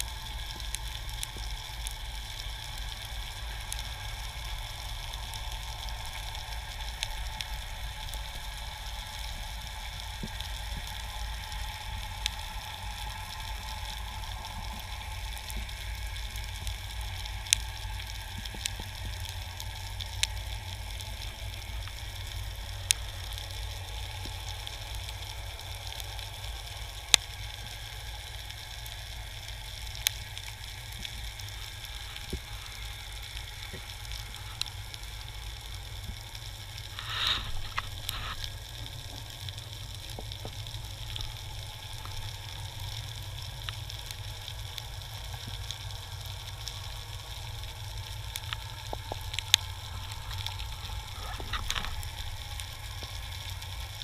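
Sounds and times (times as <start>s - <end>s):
underwater crackling hiss: 0.0s - 54.0s.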